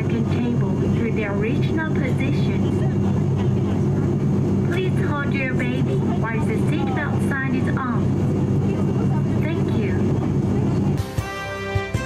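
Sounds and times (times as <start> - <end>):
aircraft cabin drone: 0.0 - 12.0
music: 10.9 - 12.0.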